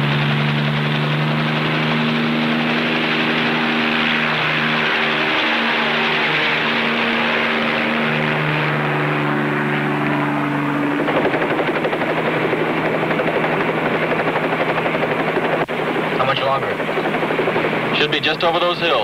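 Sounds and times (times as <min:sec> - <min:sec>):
helicopter engine drone: 0:00.0 - 0:19.0
helicopter rotor chop: 0:00.0 - 0:19.0.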